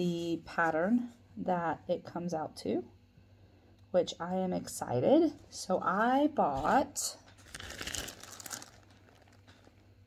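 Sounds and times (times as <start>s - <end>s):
plastic bag crinkling: 7.3s - 10.0s.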